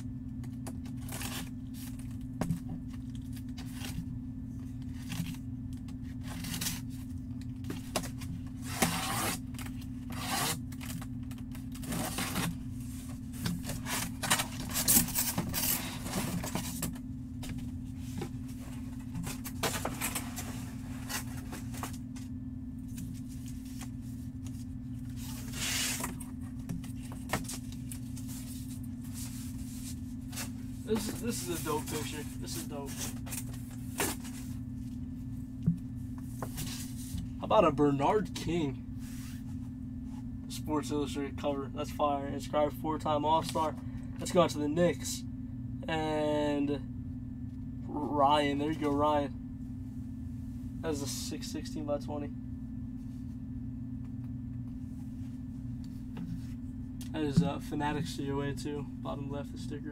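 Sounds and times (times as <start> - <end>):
steady low hum: 0.0 - 59.9
cardboard box scraping and rubbing: 25.2 - 26.1.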